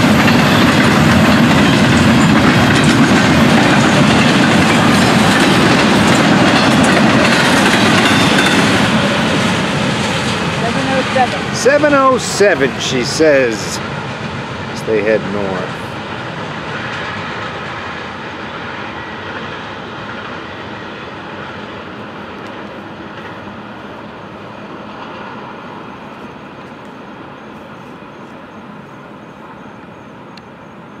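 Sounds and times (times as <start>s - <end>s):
freight train wheels rattling on rail: 0.0s - 30.9s.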